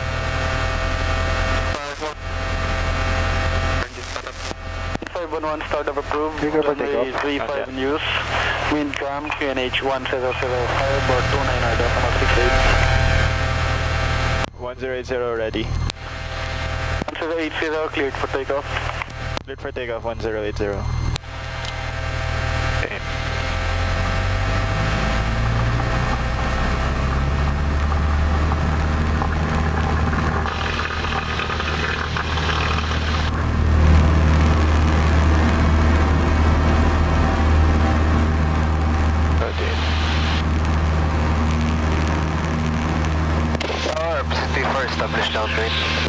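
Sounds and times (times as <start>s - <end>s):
propeller plane engine drone: 0.0s - 46.0s.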